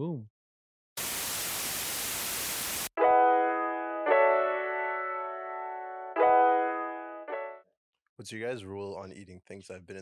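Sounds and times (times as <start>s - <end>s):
tv static hiss: 1.0s - 2.9s.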